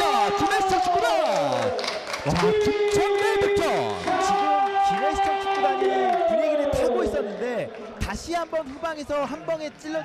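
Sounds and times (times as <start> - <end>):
crowd shouting: 0.0 - 7.6.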